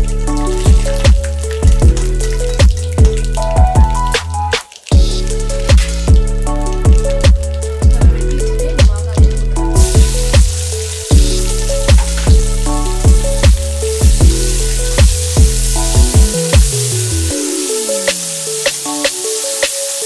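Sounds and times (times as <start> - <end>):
food sizzling in hot oil: 0.0 - 20.0
music with beat and bass: 0.0 - 20.0.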